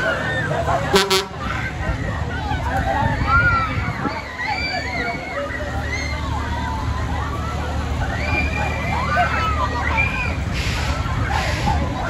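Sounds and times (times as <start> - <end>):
low rumble of fairground ride: 0.0 - 12.0
voices and shouts: 0.0 - 12.0
horn toot: 0.9 - 1.5.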